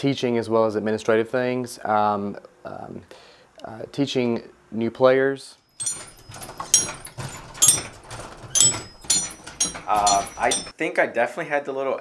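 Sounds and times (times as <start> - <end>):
chime bells ringing: 5.8 - 10.7.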